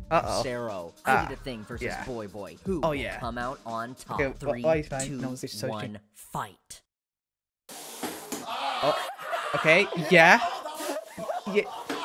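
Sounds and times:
man's voice: 0.0 - 6.0.

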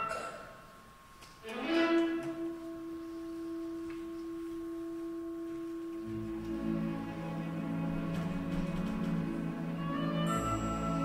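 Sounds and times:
low orchestral notes: 0.0 - 11.0
orchestra sustained note: 1.4 - 8.9.

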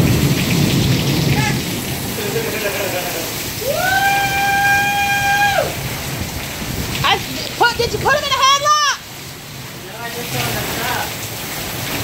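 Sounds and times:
heavy rain rushing: 0.0 - 12.0.

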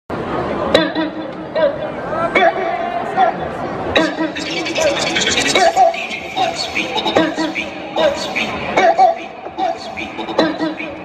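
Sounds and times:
audience voices chattering: 0.1 - 11.0.

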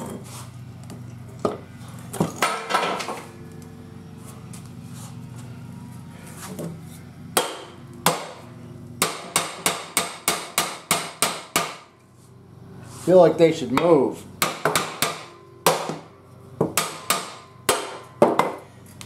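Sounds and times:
hammer striking metal: 7.4 - 8.4, 9.0 - 11.9, 13.8 - 18.6.

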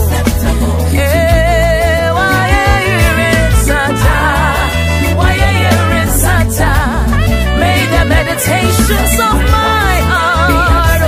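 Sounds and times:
band with steady bass: 0.0 - 11.0
woman singing gospel song: 0.0 - 11.0.

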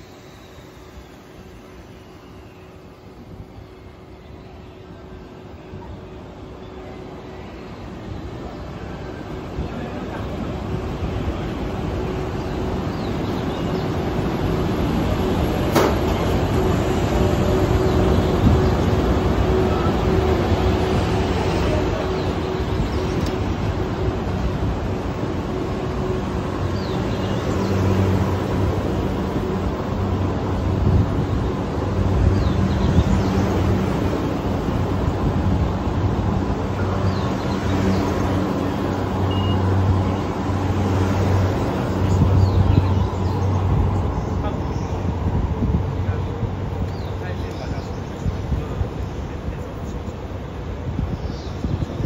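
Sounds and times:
electric locomotive humming: 0.0 - 52.0
train wheels rumbling on rails: 0.0 - 52.0.

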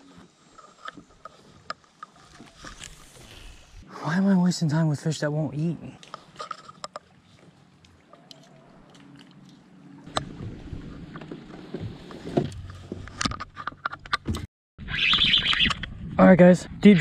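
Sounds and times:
boat motor humming: 6.0 - 14.0.

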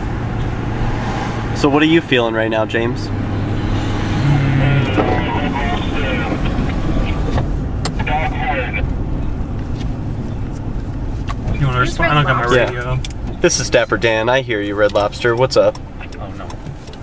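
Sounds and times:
car engine and road noise: 0.0 - 17.0
faint talk: 8.0 - 8.8.

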